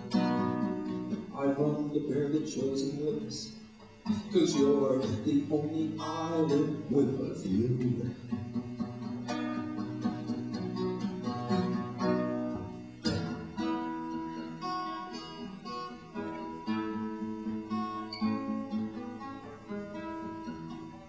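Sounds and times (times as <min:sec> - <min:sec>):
acoustic guitar picking and strumming: 0:00.0 - 0:21.0.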